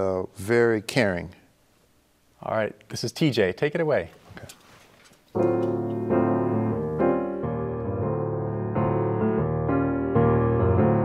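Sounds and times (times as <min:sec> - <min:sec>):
grand piano jazz chords: 0:05.3 - 0:11.0.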